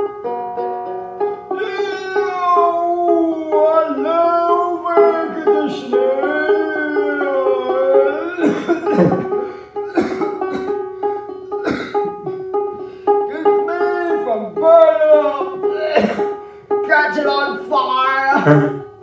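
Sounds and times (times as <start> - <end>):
banjo playing: 0.0 - 19.0
person singing wordless notes: 1.4 - 10.7, 11.3 - 19.0.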